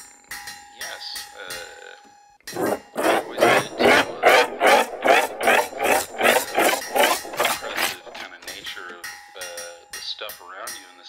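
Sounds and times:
looped rasping noise: 0:02.5 - 0:08.5.

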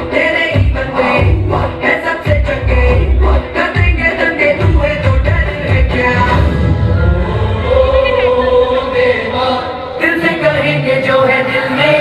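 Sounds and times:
bass beat: 0:00.0 - 0:09.2
dance song backing music: 0:00.0 - 0:12.0.

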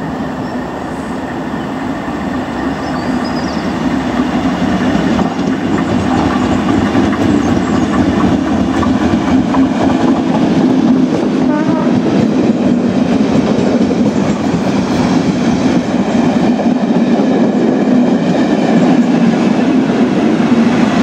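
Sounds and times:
locomotive passing: 0:00.0 - 0:21.0
wheels clattering over rail joints: 0:04.1 - 0:11.3.

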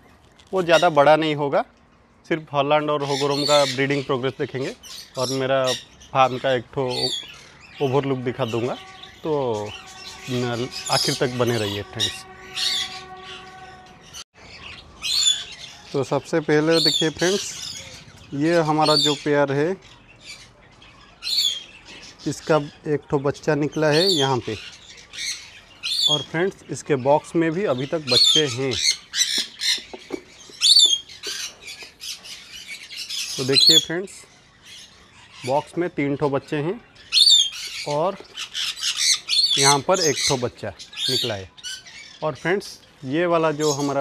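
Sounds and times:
budgerigars chirping: 0:00.6 - 0:01.4, 0:02.6 - 0:44.0.

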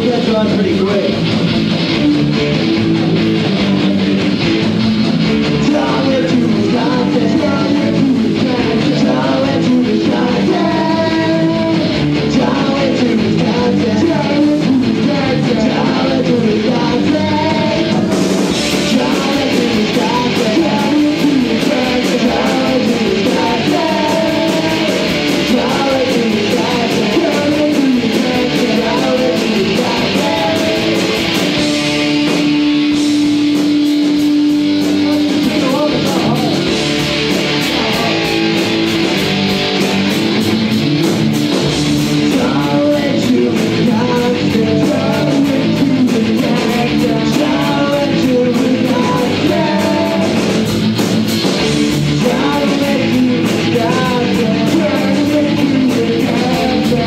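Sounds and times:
punk rock band playing: 0:00.0 - 0:57.0
person singing: 0:05.4 - 0:31.8, 0:34.5 - 0:39.8, 0:42.2 - 0:50.7, 0:52.1 - 0:57.0.

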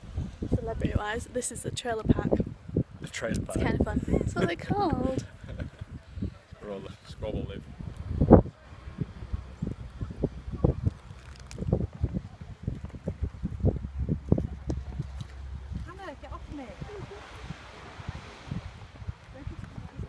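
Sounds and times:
wind and handling thumps: 0:07.4 - 0:20.0.

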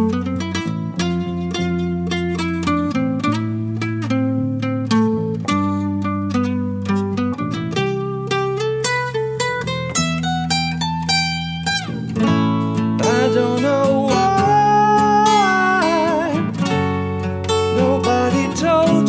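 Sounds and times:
acoustic guitar solo: 0:00.0 - 0:19.0.

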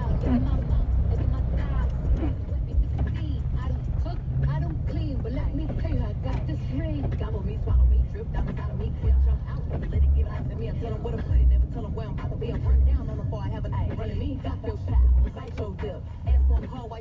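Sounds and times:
car engine and tyre rumble: 0:00.0 - 0:17.0.

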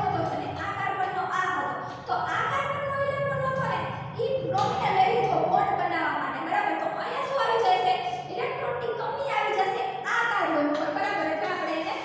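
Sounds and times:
woman lecturing: 0:00.0 - 0:12.0.

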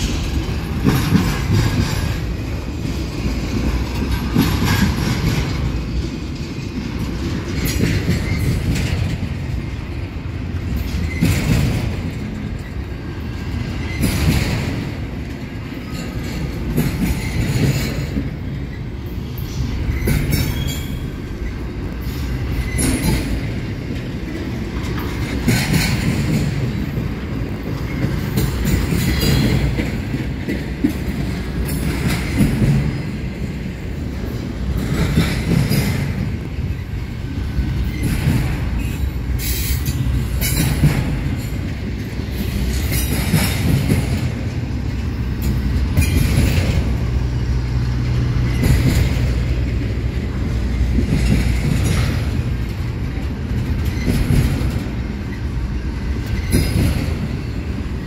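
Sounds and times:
train wheels rumbling on rail: 0:00.0 - 0:58.0
wheel squeals: 0:19.5 - 0:21.2.

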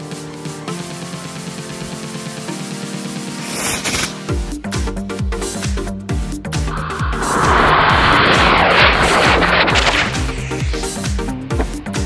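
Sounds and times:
firework rocket rushing hiss: 0:03.3 - 0:04.3, 0:06.7 - 0:11.1.

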